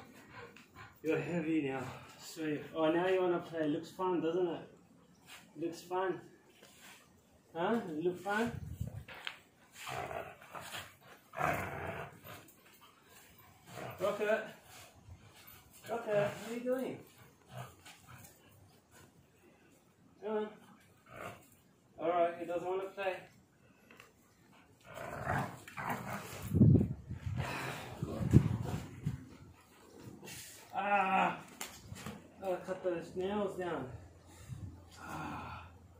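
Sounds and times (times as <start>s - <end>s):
dog growling: 9.8s - 12.5s, 24.8s - 26.6s.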